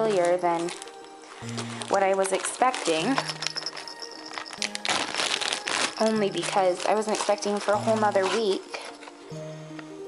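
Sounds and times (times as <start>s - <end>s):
packaging crinkling: 0.0s - 9.3s
soft background music: 0.0s - 10.0s.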